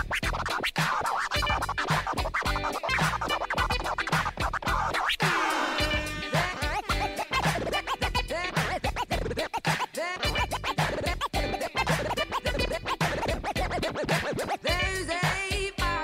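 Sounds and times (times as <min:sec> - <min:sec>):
record scratching on turntable: 0:00.0 - 0:16.0
steady beat: 0:00.0 - 0:16.0.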